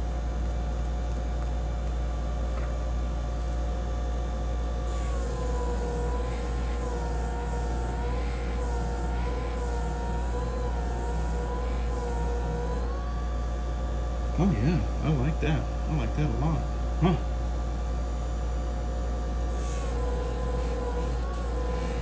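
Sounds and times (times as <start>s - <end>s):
burnishing machine hum and whine: 0.0s - 22.0s.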